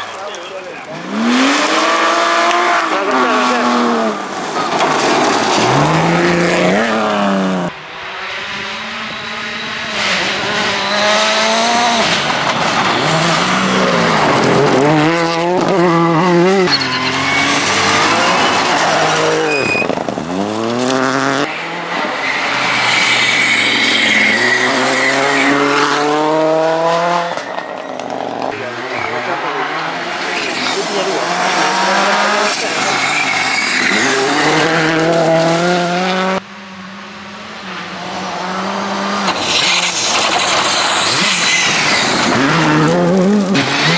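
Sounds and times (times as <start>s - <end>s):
rally car engines revving: 0.0s - 43.9s
gravel spraying: 39.3s - 43.9s.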